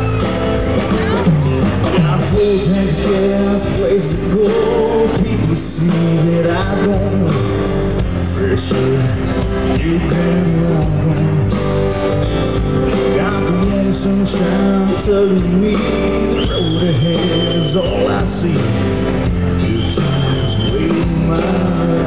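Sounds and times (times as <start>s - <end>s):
live country band music: 0.0s - 22.0s.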